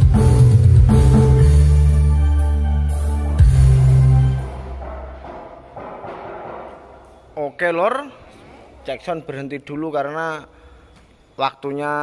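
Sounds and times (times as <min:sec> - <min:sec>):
bass-heavy music from loudspeakers: 0:00.0 - 0:05.0.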